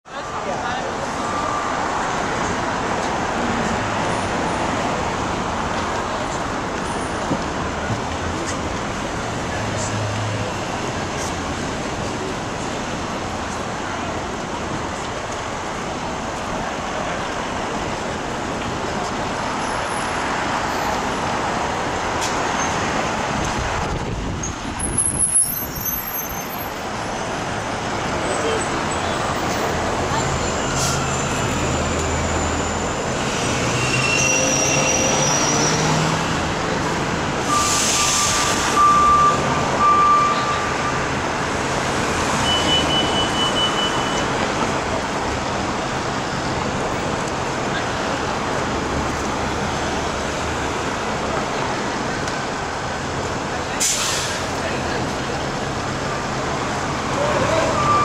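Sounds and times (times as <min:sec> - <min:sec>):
street traffic: 0:00.0 - 0:58.0
cars passing: 0:00.1 - 0:58.0
short air hiss: 0:53.8 - 0:54.5.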